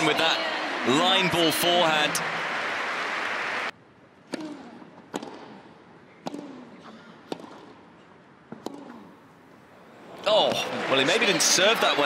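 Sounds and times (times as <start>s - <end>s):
tennis racquet hitting ball: 4.3s - 7.9s, 8.5s - 9.1s.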